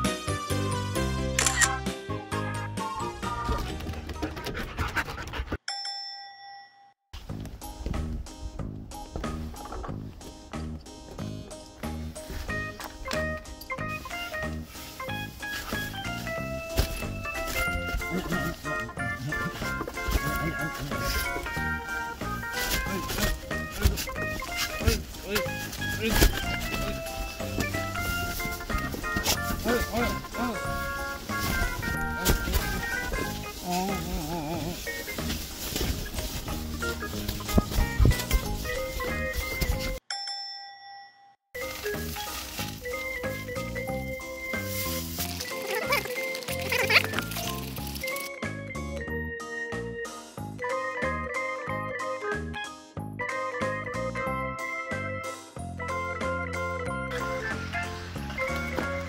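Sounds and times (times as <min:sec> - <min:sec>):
background music with beat: 0:00.0 - 0:04.2, 0:07.2 - 0:40.0, 0:41.6 - 0:46.6, 0:47.4 - 0:59.0
bell-like chime: 0:05.7 - 0:07.0, 0:40.1 - 0:41.4.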